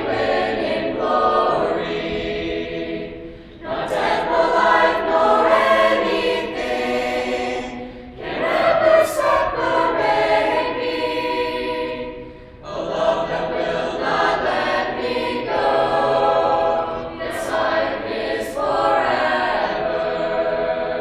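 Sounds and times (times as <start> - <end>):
youth choir singing a cappella: 0.0 - 21.0.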